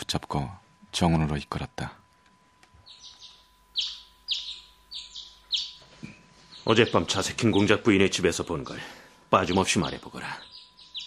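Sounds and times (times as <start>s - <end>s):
birds chirping: 2.8s - 11.0s.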